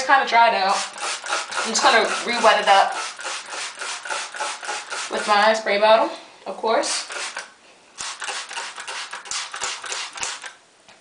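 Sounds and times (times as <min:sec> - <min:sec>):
spray bottle squirts: 0:00.7 - 0:05.4, 0:06.9 - 0:10.6.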